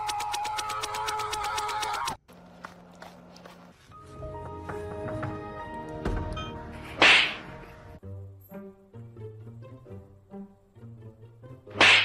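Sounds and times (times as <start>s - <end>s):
background music: 3.8s - 12.0s
whip-like swish: 7.0s - 7.4s, 11.7s - 12.0s.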